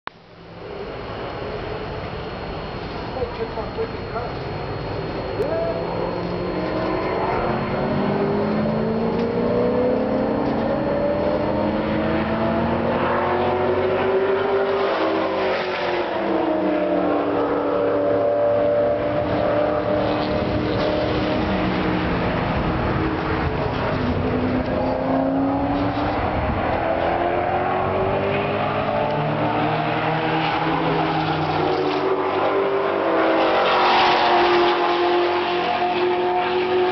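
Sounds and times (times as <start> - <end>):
race car engines revving: 2.6 - 36.9.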